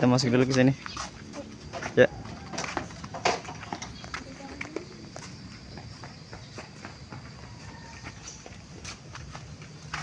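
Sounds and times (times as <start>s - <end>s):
footsteps on tiled path: 0.0s - 10.0s.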